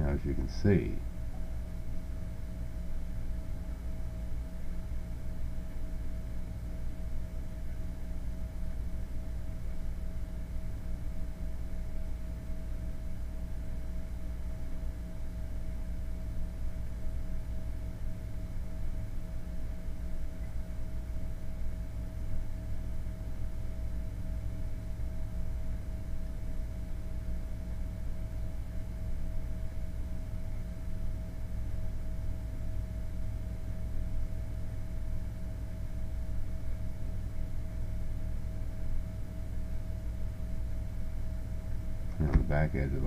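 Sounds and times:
low background hum: 0:00.0 - 0:43.0.

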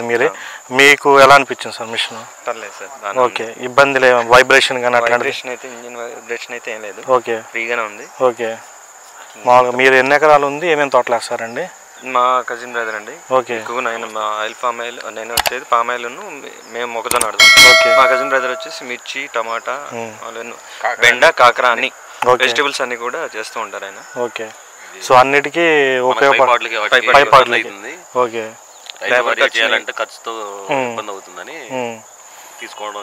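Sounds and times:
men talking: 0:00.0 - 0:33.0
high-pitched insect drone: 0:16.0 - 0:33.0
man speaking: 0:16.2 - 0:20.2
metallic ringing clang: 0:17.2 - 0:18.9.

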